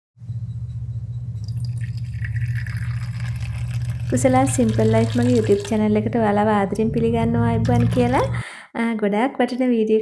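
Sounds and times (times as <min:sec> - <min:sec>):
steady low hum: 0:00.2 - 0:08.6
tea pouring into ceramic cup: 0:01.4 - 0:06.1.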